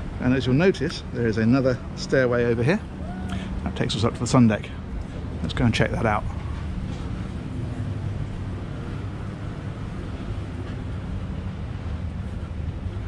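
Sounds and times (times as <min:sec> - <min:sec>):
low mechanical hum: 0:00.0 - 0:13.0
wind rumbling on microphone: 0:00.0 - 0:13.0.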